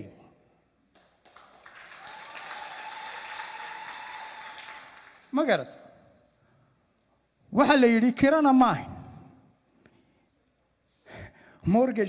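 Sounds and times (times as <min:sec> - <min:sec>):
audience applauding: 0:00.9 - 0:05.4.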